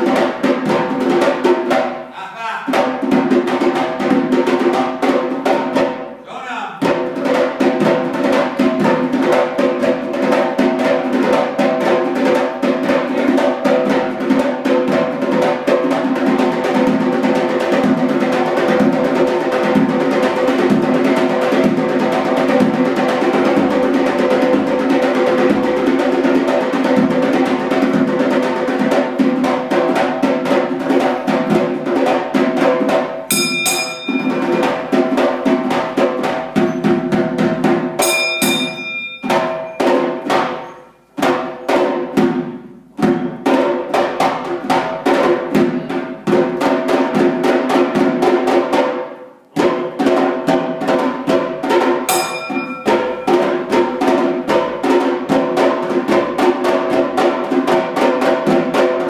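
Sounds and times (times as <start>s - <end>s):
goblet drum beating: 0.0s - 49.0s, 49.6s - 59.0s
person chanting: 2.1s - 2.8s
bell ringing: 33.3s - 34.8s, 38.0s - 40.0s, 52.1s - 53.4s.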